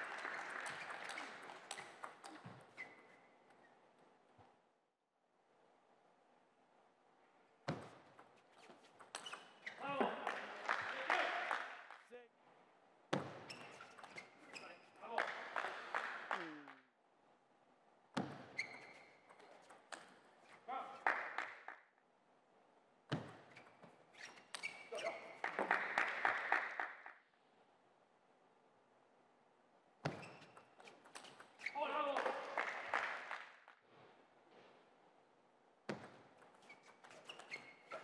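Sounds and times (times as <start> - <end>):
shoes squeaking on floor: 0.0 - 4.6, 7.7 - 10.5, 13.1 - 15.0, 18.2 - 21.1, 23.1 - 25.6, 30.0 - 32.4, 35.9 - 38.0.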